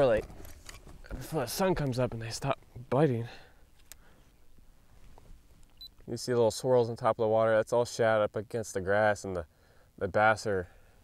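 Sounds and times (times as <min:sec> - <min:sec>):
camera handling sounds: 0:00.2 - 0:01.0, 0:03.7 - 0:04.0.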